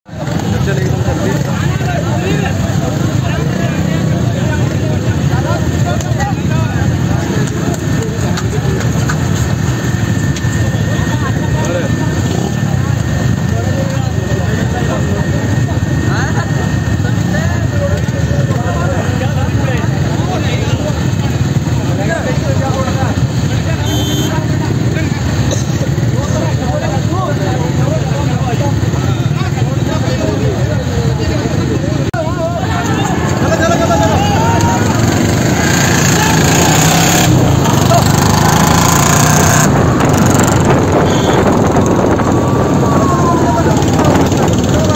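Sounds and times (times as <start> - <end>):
men's overlapping voices: 0.1 - 44.9
motorcycle engines running: 0.1 - 44.9
wind noise on microphone: 39.4 - 44.9.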